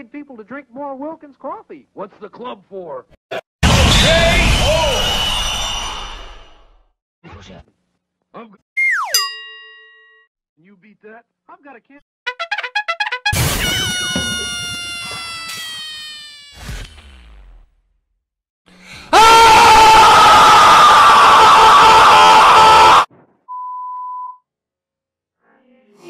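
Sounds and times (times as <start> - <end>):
loud distorted scream: 3.6 - 6.8, 19.1 - 23.1
short steady beep: 23.5 - 24.4.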